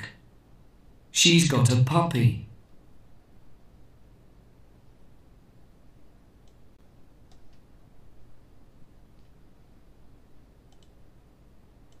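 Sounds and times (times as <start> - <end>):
low room hum: 0.0 - 12.0
computer mouse clicking: 6.4 - 7.7, 10.6 - 11.0.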